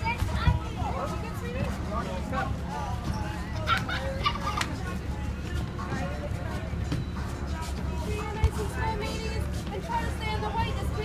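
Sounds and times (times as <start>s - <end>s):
children's excited voices and squeals: 3.2s - 5.0s.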